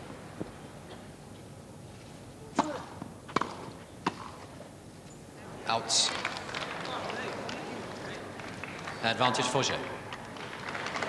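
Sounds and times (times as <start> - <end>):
tennis racket hitting ball: 2.5 - 4.6.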